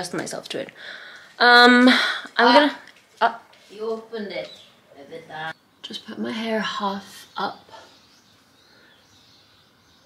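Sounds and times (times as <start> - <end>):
distant birds chirping: 0.8 - 10.0.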